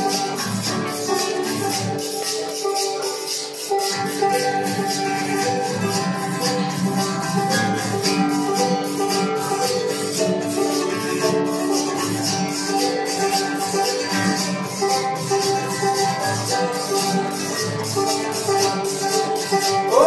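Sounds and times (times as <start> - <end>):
acoustic guitar: 0.0 - 20.0
banjo: 0.0 - 20.0
shaker rhythm: 0.0 - 20.0.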